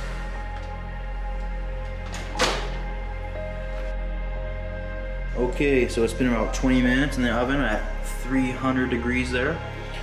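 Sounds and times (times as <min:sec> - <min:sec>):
background music with held notes: 0:00.0 - 0:10.0
oven door shutting: 0:02.0 - 0:03.0.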